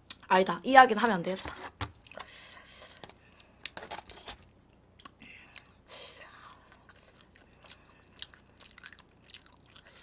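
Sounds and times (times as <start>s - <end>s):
chewing with mouth clicks: 6.4s - 10.0s.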